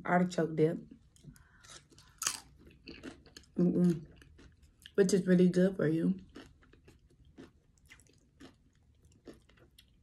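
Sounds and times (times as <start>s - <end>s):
chip crunching: 1.4s - 5.0s, 6.2s - 10.0s.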